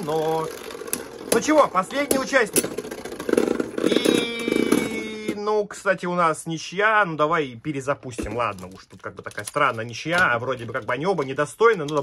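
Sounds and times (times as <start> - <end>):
spinning tops rattling and scraping: 0.0 - 5.4.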